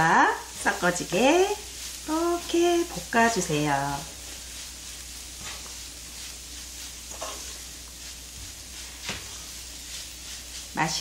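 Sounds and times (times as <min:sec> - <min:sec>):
soft sizzle from pan: 0:00.0 - 0:11.0
spatula stirring in frying pan: 0:00.0 - 0:11.0.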